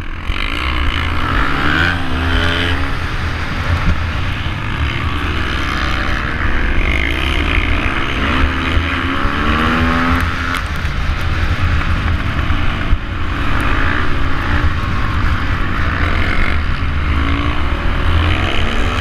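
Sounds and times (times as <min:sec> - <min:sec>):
motorcycle engine revving: 0:00.0 - 0:19.0
wind rumble on microphone: 0:00.0 - 0:19.0.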